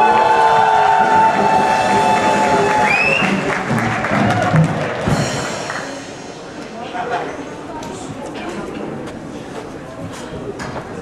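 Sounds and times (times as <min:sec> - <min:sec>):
audience applauding and cheering: 0:00.0 - 0:06.1
live band song held note: 0:00.0 - 0:06.6.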